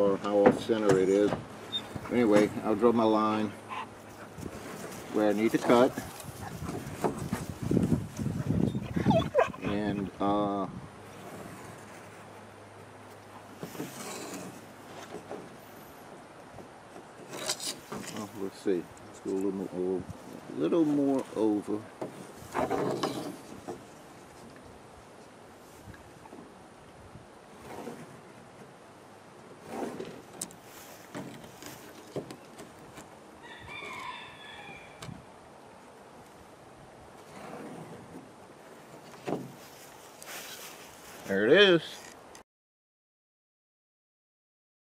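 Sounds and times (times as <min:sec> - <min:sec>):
wind on microphone: 0:05.9 - 0:11.0.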